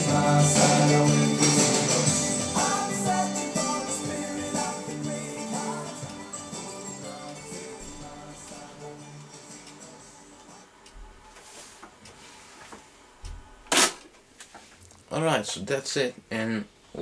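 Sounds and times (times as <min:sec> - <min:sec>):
music from tape recorder: 0:00.0 - 0:11.6.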